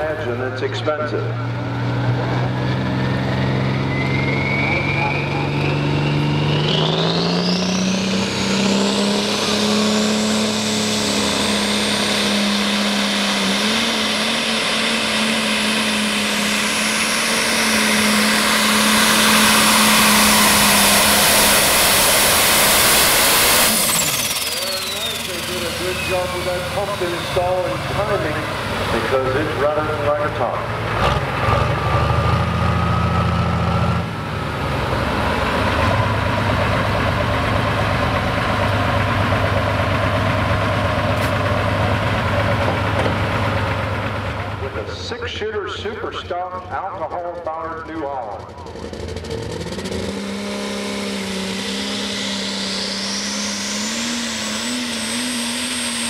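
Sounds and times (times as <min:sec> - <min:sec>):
diesel tractor engine at full throttle: 0:00.0 - 0:56.0
turbo whine: 0:02.2 - 0:30.7, 0:35.7 - 0:56.0
engine idling: 0:14.3 - 0:31.0, 0:35.7 - 0:50.3
voices: 0:24.6 - 0:30.7, 0:44.4 - 0:48.8.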